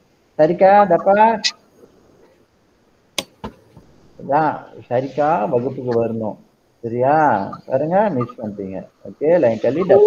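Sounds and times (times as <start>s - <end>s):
faint background noise: 0.0s - 10.0s
sharp clicks: 3.2s - 3.6s.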